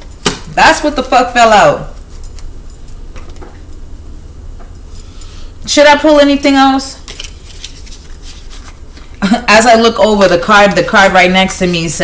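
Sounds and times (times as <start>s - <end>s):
cards shuffling: 7.0s - 9.1s.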